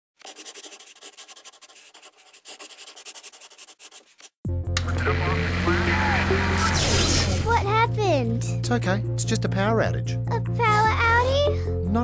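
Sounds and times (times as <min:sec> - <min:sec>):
pencil scratching on paper: 0:00.2 - 0:04.4.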